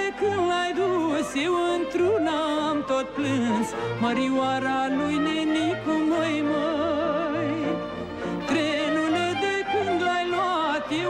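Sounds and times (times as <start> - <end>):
violin melody: 0.0 - 11.0.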